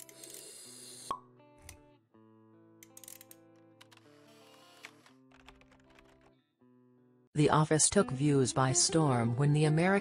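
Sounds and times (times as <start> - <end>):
held chords background music: 1.1 - 10.0.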